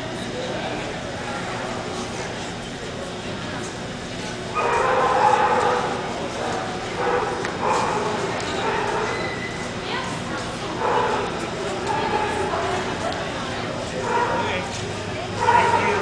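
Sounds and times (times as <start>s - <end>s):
murmur of crowd in hall: 0.0s - 16.0s.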